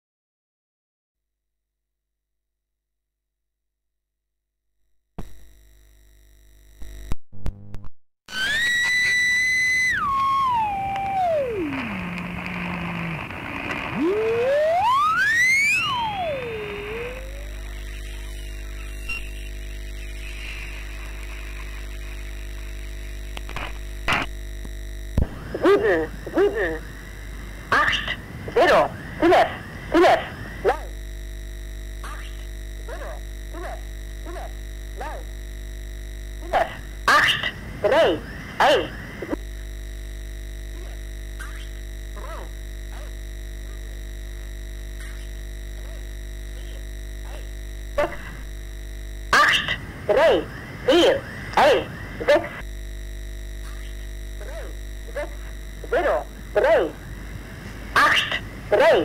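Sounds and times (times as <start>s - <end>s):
whistling radio beat tone: 8.3s - 13.0s, 13.9s - 19.5s
radio band hiss: 8.3s - 59.0s
garbled voice syllables: 10.3s - 14.9s, 25.5s - 26.9s, 27.7s - 30.9s, 32.0s - 35.3s, 36.4s - 39.4s, 40.7s - 41.6s, 42.2s - 43.8s, 45.0s - 48.4s, 49.3s - 52.6s, 53.7s - 57.0s, 57.9s - 59.0s
voice speaking over radio: 25.5s - 26.9s, 27.7s - 30.9s, 32.9s - 35.3s, 36.4s - 39.4s, 49.3s - 52.6s, 54.4s - 57.0s, 58.0s - 59.0s.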